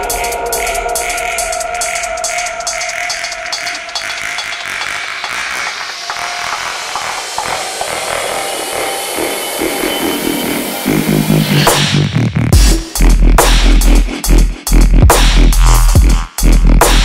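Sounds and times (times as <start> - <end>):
rising noise sweep: 0.0 - 12.1
gritty synth textures: 0.0 - 12.6.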